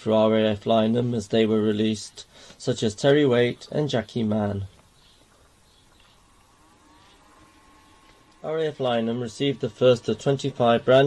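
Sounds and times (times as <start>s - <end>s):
faint background hiss: 0.0s - 11.0s
faint steady tone: 0.0s - 11.0s.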